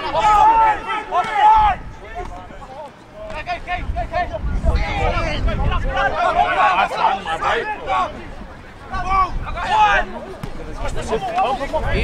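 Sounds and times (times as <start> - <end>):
men shouting: 0.0 - 1.9, 3.6 - 8.2.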